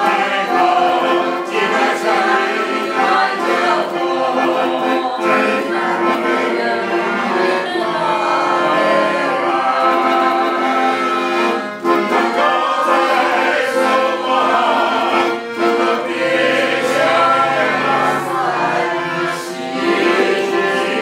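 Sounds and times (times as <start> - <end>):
accordion chords: 0.0 - 21.0.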